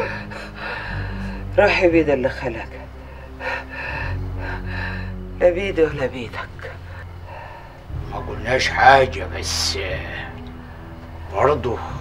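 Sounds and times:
long gasping breaths: 0:00.0 - 0:01.6, 0:02.9 - 0:05.4, 0:06.8 - 0:08.0
low steady hum: 0:00.0 - 0:12.0.

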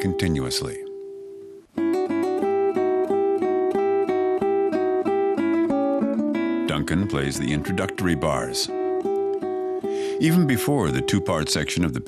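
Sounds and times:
nylon-string guitar melody: 0:00.0 - 0:12.0.

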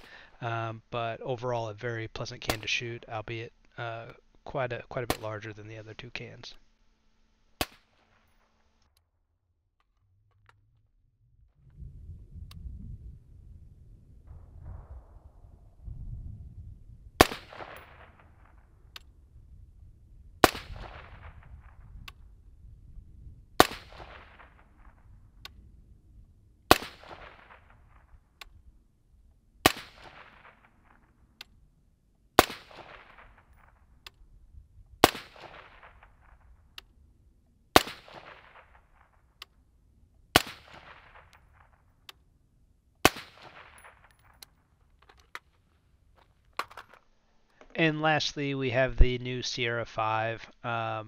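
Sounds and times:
suppressed rifle shots: 0:05.1 - 0:05.4, 0:07.6 - 0:08.5, 0:17.2 - 0:19.2, 0:20.4 - 0:22.3, 0:23.6 - 0:25.6, 0:26.7 - 0:28.6, 0:29.6 - 0:31.6, 0:32.4 - 0:34.2, 0:35.0 - 0:36.9, 0:37.7 - 0:39.6, 0:40.3 - 0:42.2, 0:43.0 - 0:45.6
low rumble: 0:10.0 - 0:26.7.

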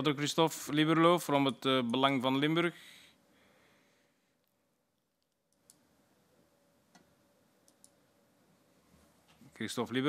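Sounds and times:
faint clicks: 0:06.9 - 0:08.0.

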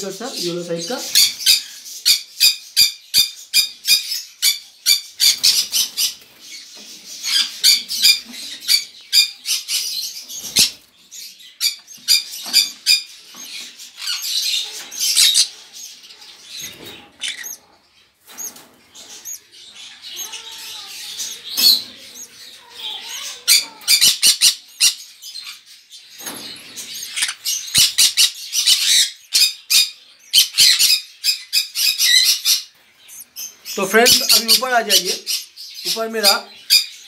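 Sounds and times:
parrots chirping and squawking: 0:00.0 - 0:37.0.

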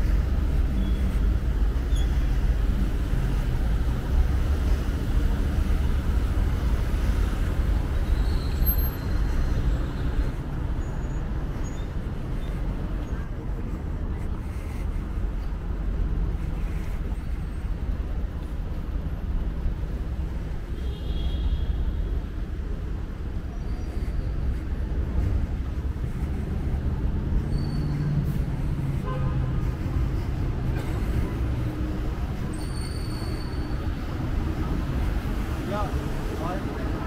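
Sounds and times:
street traffic rumble: 0:00.0 - 0:37.0.

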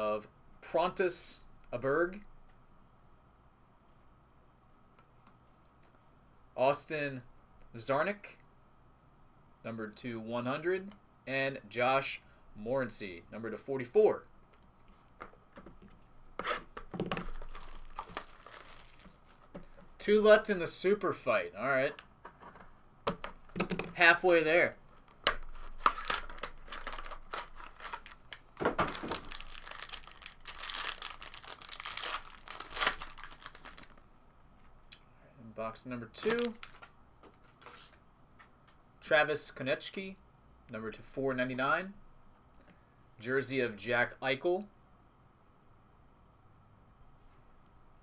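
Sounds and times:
trading cards clicking and rustling: 0:15.2 - 0:20.0, 0:21.9 - 0:24.1, 0:25.0 - 0:34.0, 0:36.2 - 0:38.5
plastic wrap tearing and crinkling: 0:16.4 - 0:19.9, 0:25.0 - 0:34.0, 0:36.2 - 0:36.9.

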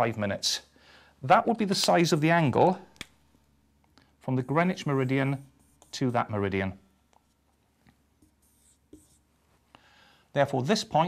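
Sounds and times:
marker squeaking on whiteboard: 0:04.6 - 0:06.2, 0:08.2 - 0:09.2.

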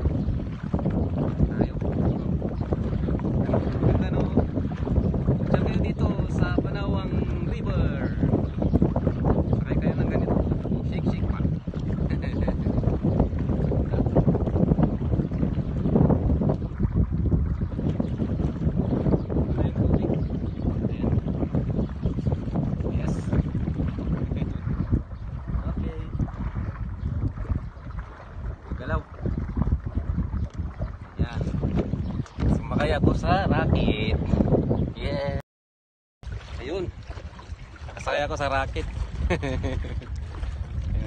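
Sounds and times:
wind buffeting microphone: 0:00.0 - 0:35.4, 0:36.2 - 0:41.0.

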